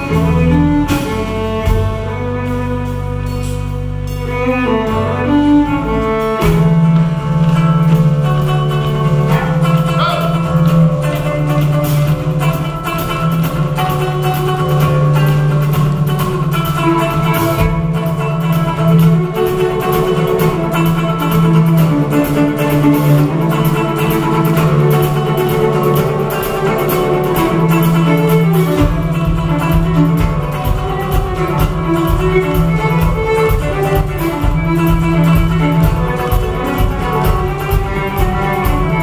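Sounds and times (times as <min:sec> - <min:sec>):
acoustic guitar: 0:00.0 - 0:39.0
fiddle: 0:00.0 - 0:39.0.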